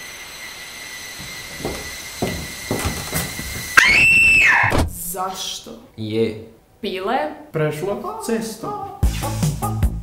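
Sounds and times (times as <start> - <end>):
soft knocks: 1.2 - 3.9
loud high-pitched scream: 3.7 - 4.8.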